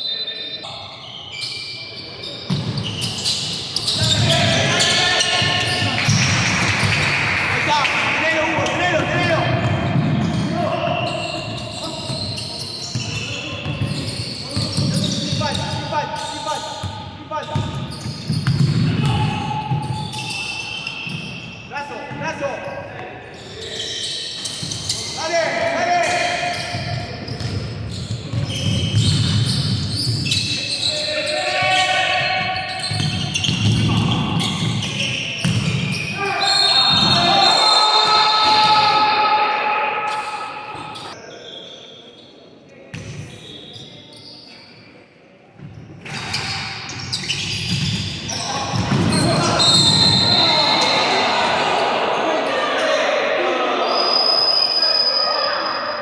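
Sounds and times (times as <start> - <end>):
players calling out: 2.1 - 41.3, 46.2 - 56.0.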